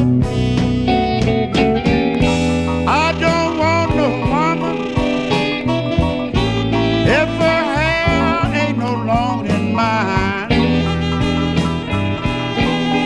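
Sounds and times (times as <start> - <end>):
bass line: 0.0 - 13.0
drums: 0.0 - 13.0
lead electric guitar bending notes: 0.0 - 13.0.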